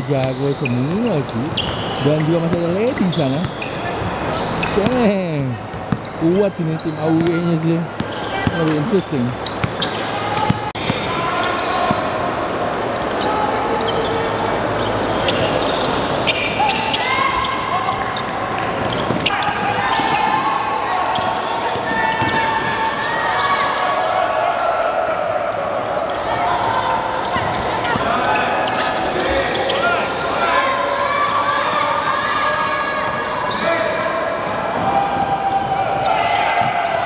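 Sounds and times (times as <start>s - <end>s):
players calling out: 0.0s - 37.0s.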